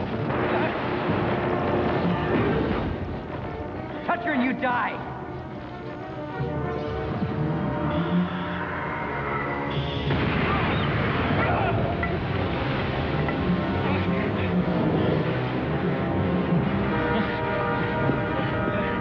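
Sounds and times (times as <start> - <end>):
dramatic film score: 0.0 - 19.0.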